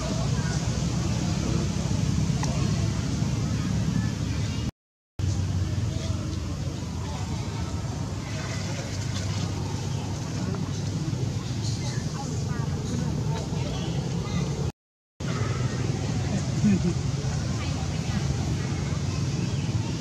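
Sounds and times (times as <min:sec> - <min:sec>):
faint distant voices: 0:00.0 - 0:20.0
low outdoor rumble: 0:00.0 - 0:20.0.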